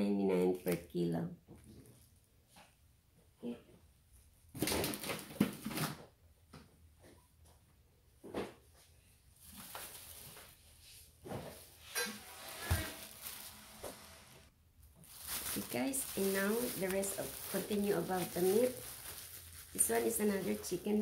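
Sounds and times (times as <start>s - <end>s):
plastic bags rustling and crinkling: 9.3s - 21.0s.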